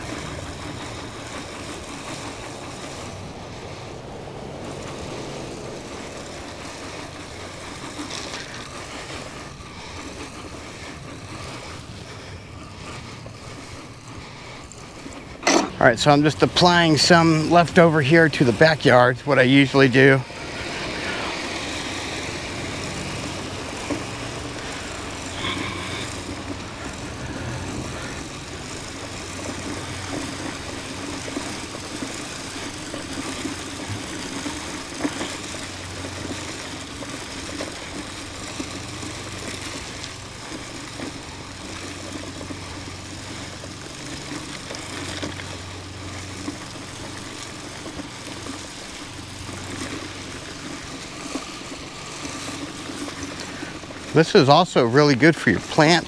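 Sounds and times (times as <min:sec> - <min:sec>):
fertilizer spreader whirring rattle: 0:00.0 - 0:56.0.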